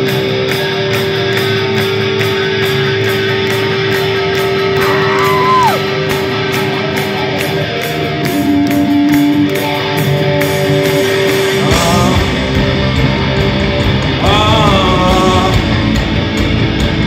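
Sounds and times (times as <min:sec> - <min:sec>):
bass and drums: 0:00.0 - 0:17.0
electric guitar sustained notes: 0:00.0 - 0:17.0
person singing: 0:11.3 - 0:16.0.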